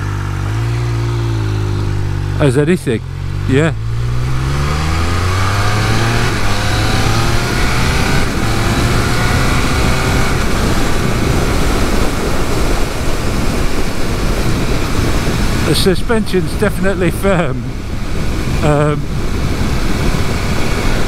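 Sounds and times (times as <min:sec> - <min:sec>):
motorcycle engine accelerating: 0:00.0 - 0:16.4, 0:17.0 - 0:21.0
wind noise: 0:03.3 - 0:21.0.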